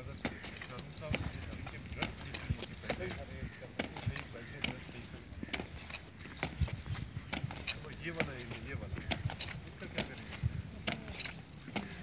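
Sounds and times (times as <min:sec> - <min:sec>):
boots stamping on brick path: 0:00.0 - 0:12.0.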